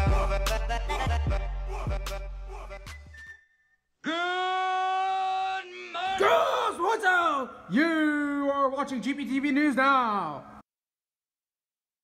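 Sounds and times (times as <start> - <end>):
holiday music: 0.0 - 3.2
person shouting: 4.0 - 8.6
person yelling: 4.0 - 8.6.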